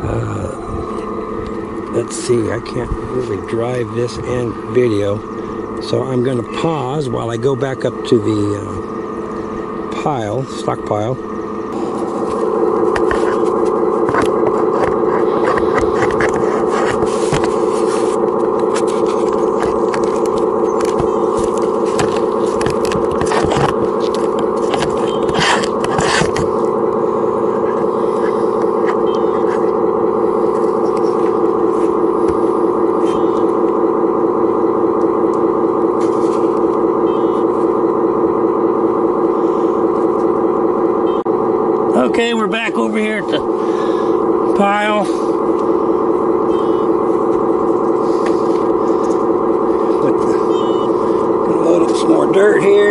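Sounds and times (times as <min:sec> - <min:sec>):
simulated diesel engine buzz: 0:00.0 - 0:52.9.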